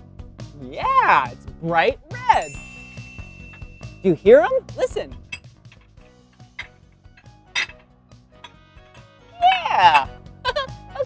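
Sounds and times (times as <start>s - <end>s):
glass rods clinking: 2.4s - 4.2s, 5.2s - 8.6s.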